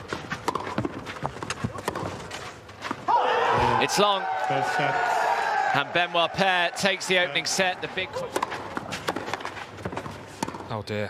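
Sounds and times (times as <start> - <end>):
racquet striking tennis ball: 0.4 - 2.2, 7.8 - 10.7
ball bouncing on clay: 8.2 - 10.7.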